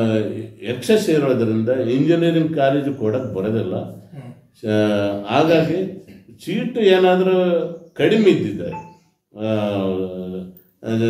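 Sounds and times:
man talking: 0:00.0 - 0:04.0, 0:04.6 - 0:08.8, 0:09.4 - 0:11.0.

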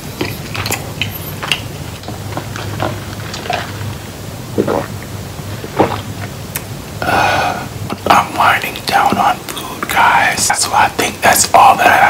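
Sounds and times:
man whispering: 0:07.0 - 0:12.0.

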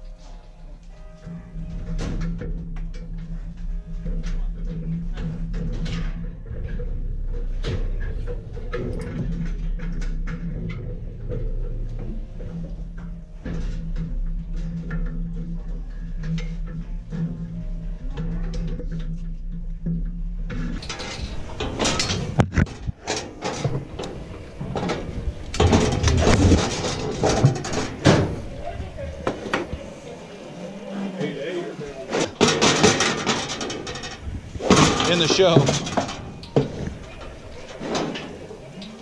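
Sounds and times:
steady low hum: 0:00.0 - 0:39.0
indistinct voices: 0:20.8 - 0:39.0.

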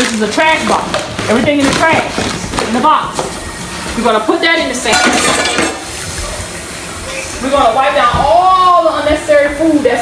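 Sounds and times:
dishes and pot clinking: 0:04.8 - 0:06.0.

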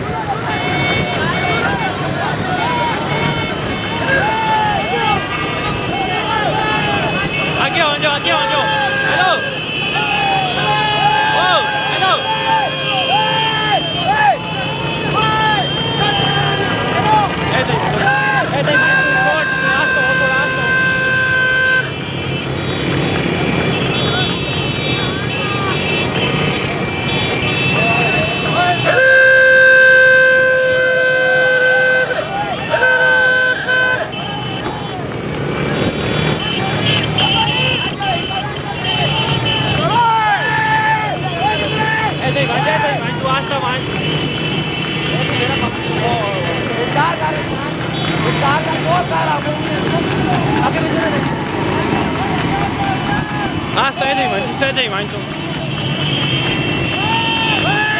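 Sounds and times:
vehicle horns blasting: 0:00.0 - 0:35.0, 0:35.6 - 0:57.9
motorcycle engines running: 0:00.0 - 0:57.9
men shouting: 0:01.3 - 0:21.7, 0:36.7 - 0:43.8, 0:48.2 - 0:55.1, 0:56.9 - 0:57.9.

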